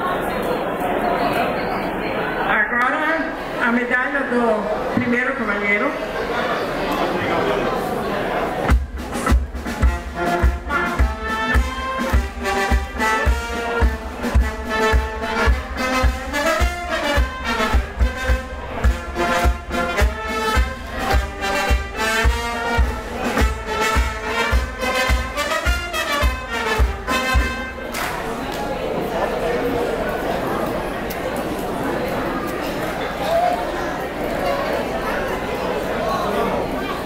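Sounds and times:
low drum beats: 8.6 - 28.0
brass band playing lively tune: 8.6 - 29.4.

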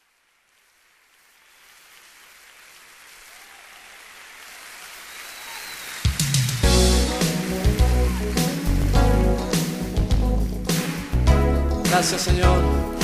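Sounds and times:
audience applause: 0.0 - 11.2.

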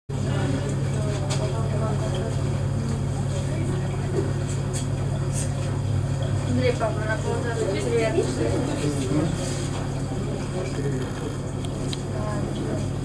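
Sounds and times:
steady low hum: 0.1 - 13.0.

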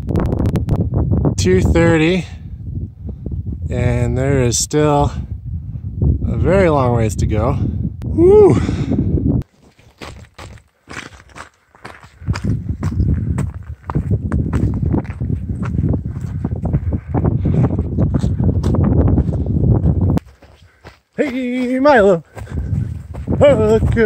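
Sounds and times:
footsteps crunching on scree: 9.4 - 17.1, 17.8 - 24.0.

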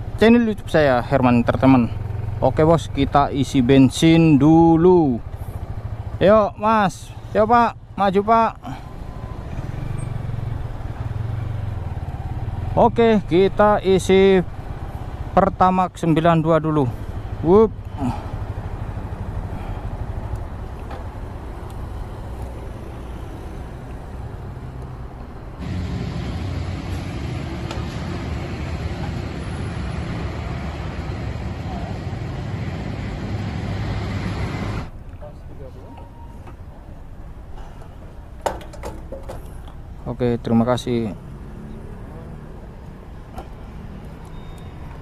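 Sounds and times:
engine and traffic noise: 0.0 - 45.0.

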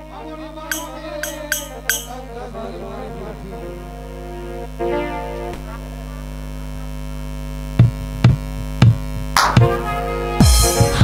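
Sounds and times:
sound system electrical hum: 0.0 - 11.0
heavy drum beat: 7.8 - 11.0.

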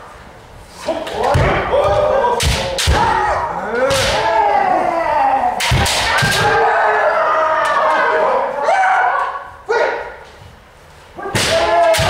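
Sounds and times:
people shouting: 0.9 - 10.2, 11.2 - 12.0
bamboo swords striking armour: 2.4 - 3.2, 3.9 - 4.3, 5.6 - 6.6, 11.3 - 12.0.

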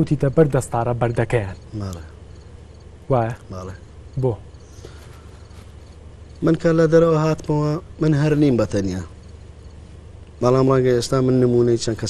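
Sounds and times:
faint high-pitched hiss: 0.0 - 12.0
steady low hum: 0.0 - 12.0.

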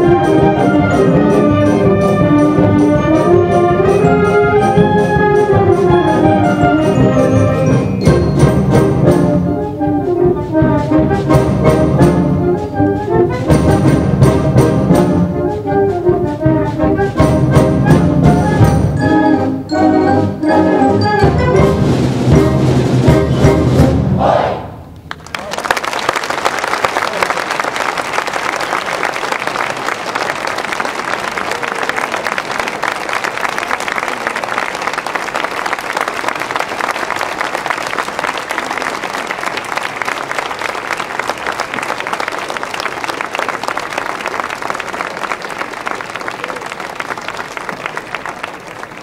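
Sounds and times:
audience applauding: 25.1 - 49.0.

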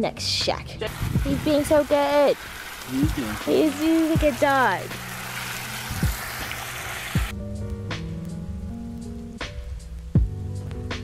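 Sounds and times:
water splashing on concrete: 0.9 - 7.3
background music with soft beat: 5.9 - 11.0.

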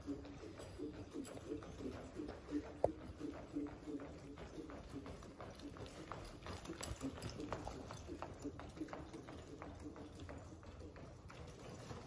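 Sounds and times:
horse hoofbeats in soft dirt: 0.0 - 12.0.

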